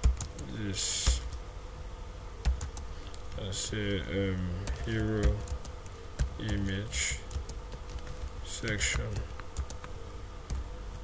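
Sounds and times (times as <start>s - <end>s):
keyboard typing: 0.0s - 1.4s, 2.4s - 3.5s, 4.6s - 9.9s.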